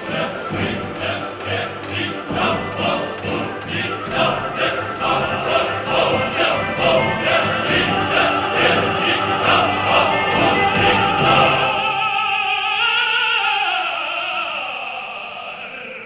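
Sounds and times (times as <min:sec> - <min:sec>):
orchestra accented chords: 0:00.0 - 0:12.1
male chorus singing: 0:00.0 - 0:16.0.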